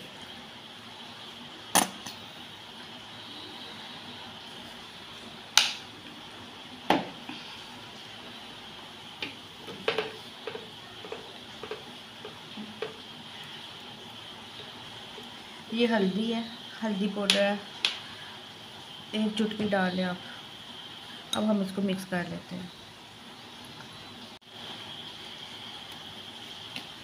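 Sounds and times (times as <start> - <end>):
faint steady hiss: 0.0 - 27.0.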